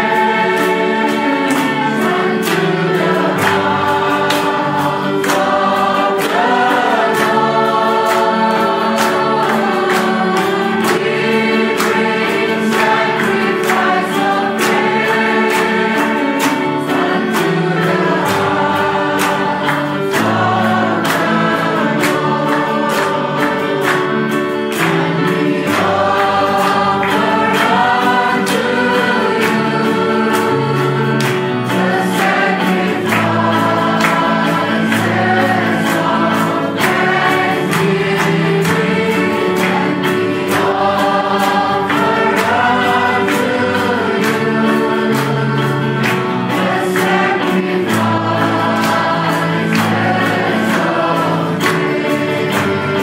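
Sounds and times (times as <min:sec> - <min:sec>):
choir singing gospel music: 0:00.0 - 0:53.0
musical accompaniment with steady beat: 0:00.0 - 0:53.0.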